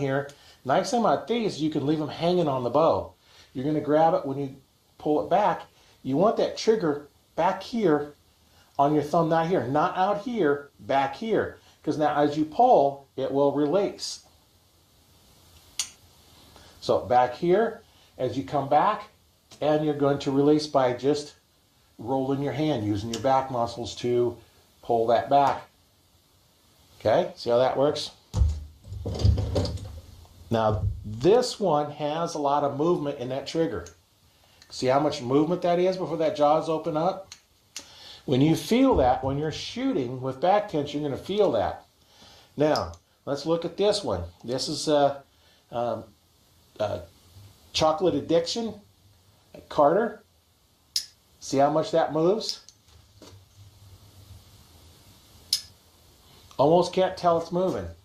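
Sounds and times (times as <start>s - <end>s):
low handling thumps: 28.3s - 31.2s.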